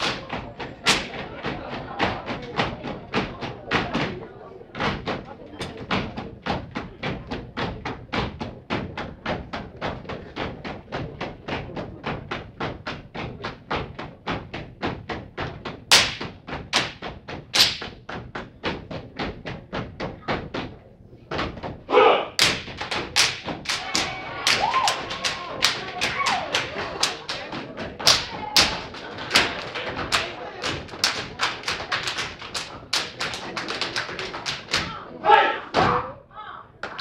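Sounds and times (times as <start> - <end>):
rhythmic stomps and hand claps: 0.0 - 36.0.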